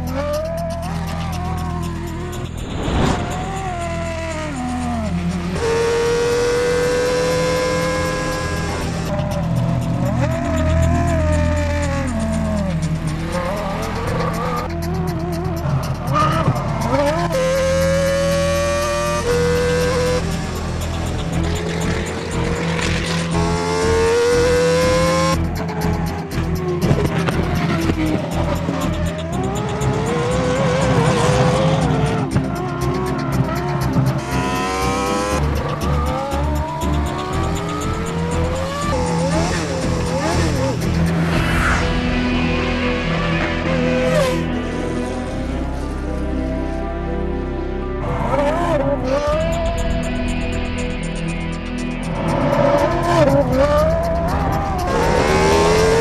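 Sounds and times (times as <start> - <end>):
car tyres squealing: 0.0 - 41.9
car engine running: 0.0 - 45.9, 49.2 - 56.0.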